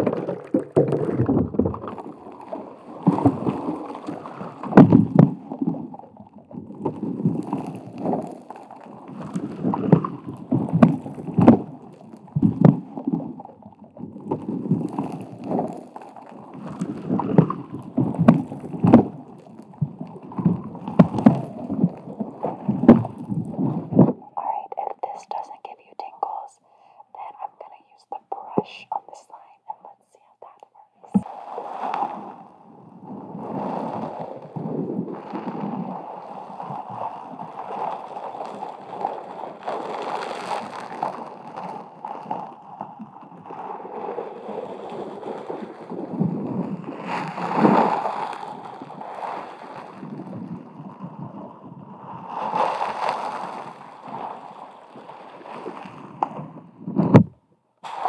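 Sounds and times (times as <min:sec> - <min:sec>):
whispering: 0:24.2 - 0:31.3.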